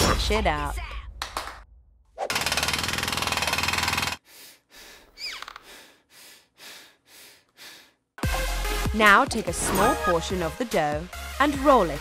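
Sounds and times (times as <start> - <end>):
squeak: 5.2 - 5.6.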